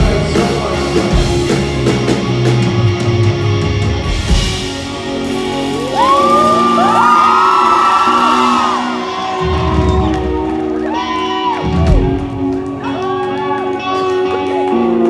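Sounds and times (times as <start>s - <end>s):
crowd whooping and cheering: 5.4s - 15.0s.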